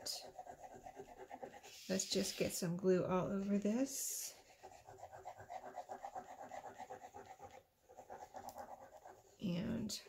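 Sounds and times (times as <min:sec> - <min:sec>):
glue bottle tip scratching paper: 0:00.0 - 0:02.5, 0:04.4 - 0:09.2.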